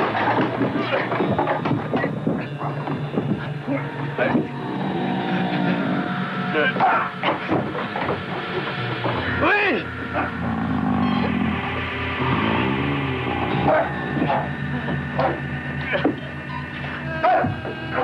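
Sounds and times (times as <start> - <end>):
sustained music tones: 0.0 - 18.0.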